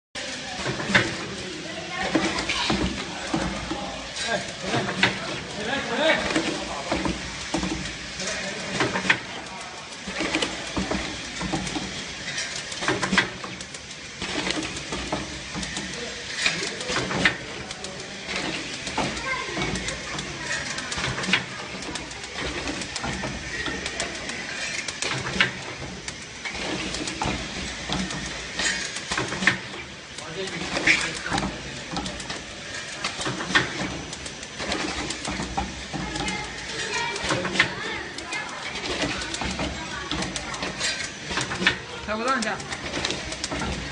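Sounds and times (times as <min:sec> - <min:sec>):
machine humming: 0:00.2 - 0:43.9.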